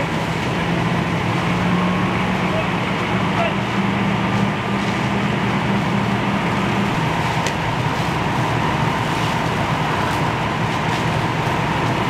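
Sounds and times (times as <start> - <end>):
diesel engines running: 0.0 - 12.0.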